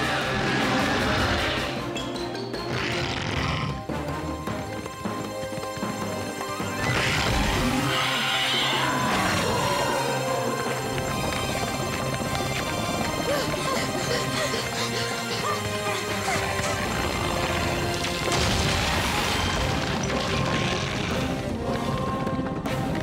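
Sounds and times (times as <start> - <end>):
cartoon soundtrack music: 0.0 - 23.0.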